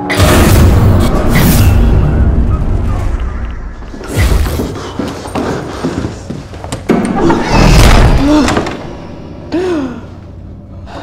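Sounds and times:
person gasping: 0:09.4 - 0:11.0.

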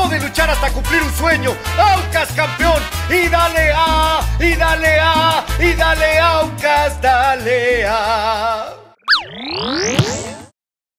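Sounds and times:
person singing latin-style song: 0:00.0 - 0:09.0
rising whoosh sweep: 0:09.0 - 0:10.4
electronic zap: 0:09.0 - 0:10.5.

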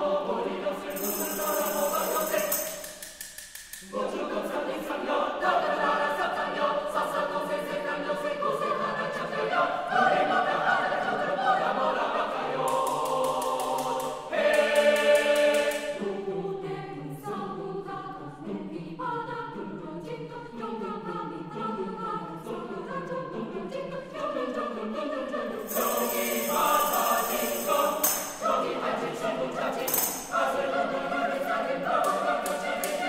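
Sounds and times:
choir singing a cappella: 0:00.0 - 0:03.2, 0:03.8 - 0:33.0.

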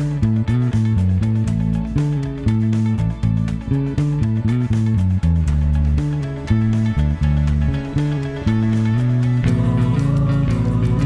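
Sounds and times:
electric bass riff: 0:00.0 - 0:11.0.

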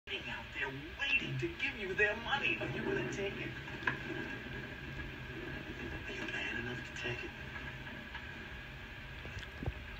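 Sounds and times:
steady low rumble: 0:00.1 - 0:09.9.

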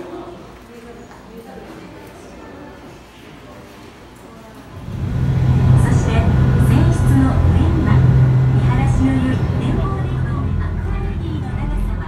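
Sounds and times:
passengers chattering: 0:00.0 - 0:12.0
boat engine drone: 0:04.7 - 0:12.0.

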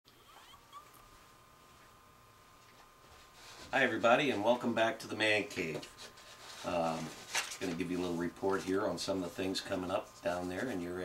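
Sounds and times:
faint high hum: 0:00.1 - 0:11.0.

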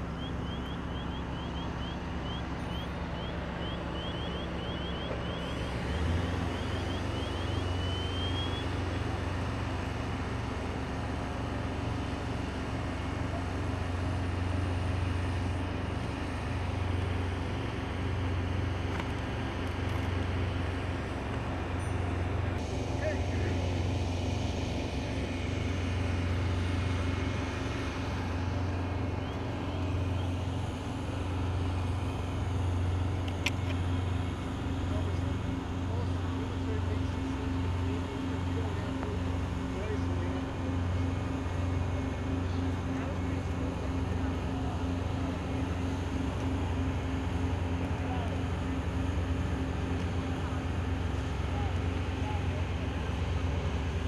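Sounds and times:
vehicle engine idling: 0:00.0 - 0:54.0.

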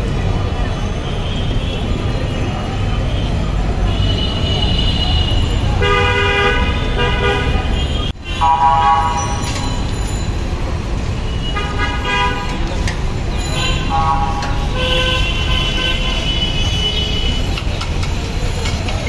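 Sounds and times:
traffic rumble: 0:00.0 - 0:19.0
car horns honking: 0:03.8 - 0:09.5, 0:11.3 - 0:17.6.

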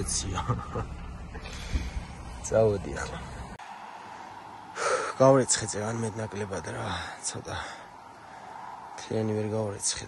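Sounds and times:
truck cab rumble: 0:00.0 - 0:03.6
open-air background: 0:00.0 - 0:10.0.

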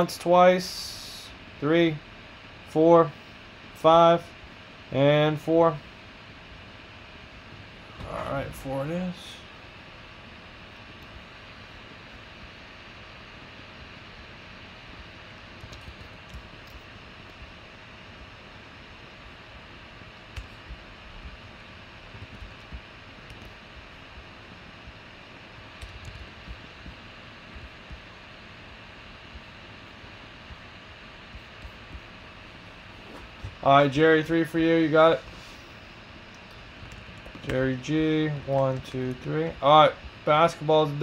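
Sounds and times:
fan-like room hum: 0:00.0 - 0:41.0.

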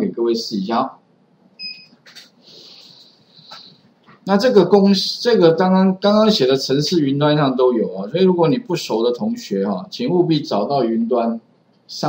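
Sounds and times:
two-tone electronic beep: 0:01.6 - 0:02.0.

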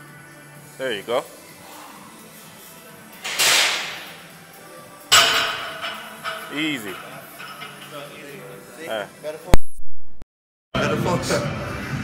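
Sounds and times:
background music: 0:00.0 - 0:09.5, 0:10.8 - 0:12.0.

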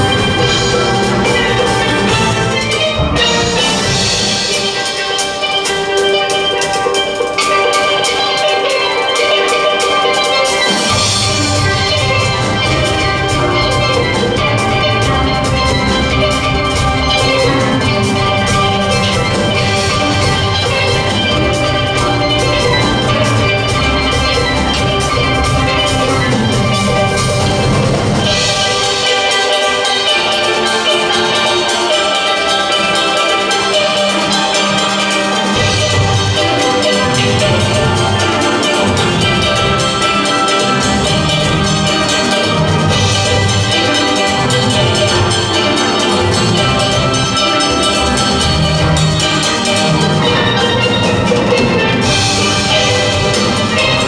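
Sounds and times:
steady drum beat: 0:00.0 - 0:54.0
steel pans ringing: 0:00.0 - 0:54.0.

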